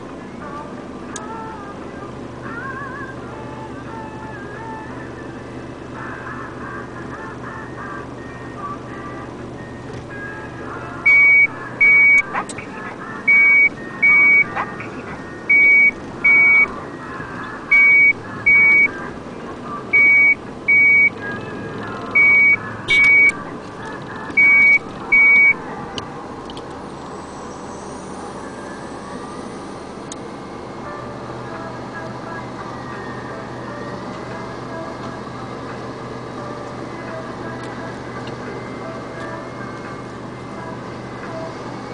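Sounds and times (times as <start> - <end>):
reversing alarm beeps: 11.0 - 12.5, 13.3 - 14.7, 15.4 - 16.8, 17.7 - 19.0, 19.9 - 21.2, 22.2 - 23.4, 24.4 - 25.7.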